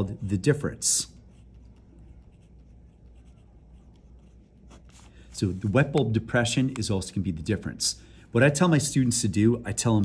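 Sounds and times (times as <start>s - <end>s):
pencil scratching on paper: 1.0s - 5.8s.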